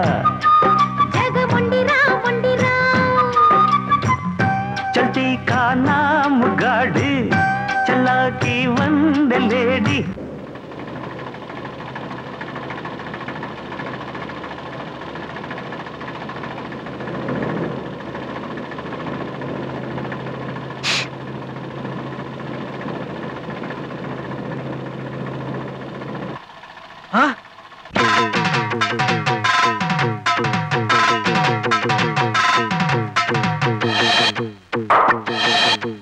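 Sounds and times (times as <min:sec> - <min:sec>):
car engine running: 0:00.0 - 0:36.0
gliding whistle-like tone: 0:00.1 - 0:01.4
brief high hiss: 0:20.8 - 0:21.1.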